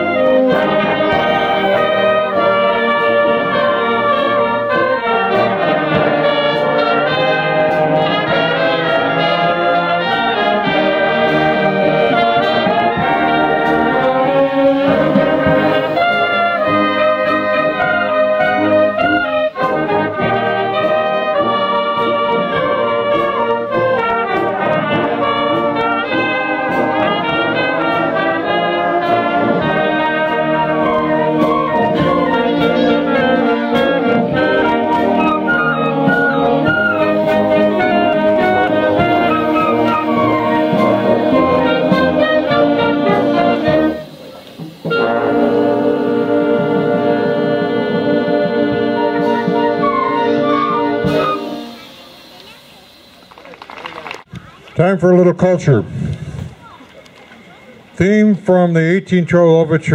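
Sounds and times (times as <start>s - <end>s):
trombones and trumpets: 0.0s - 54.2s
concert band playing: 0.0s - 55.8s.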